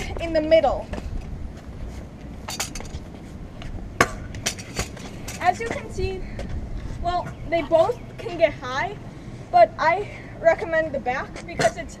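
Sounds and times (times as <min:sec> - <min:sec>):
low rumble of wheels on concrete: 0:00.0 - 0:12.0.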